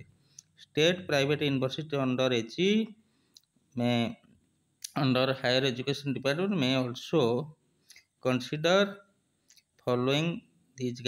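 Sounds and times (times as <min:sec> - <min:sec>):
man narrating: 0:00.6 - 0:02.9, 0:03.8 - 0:04.2, 0:04.9 - 0:07.5, 0:08.3 - 0:09.0, 0:09.9 - 0:11.0.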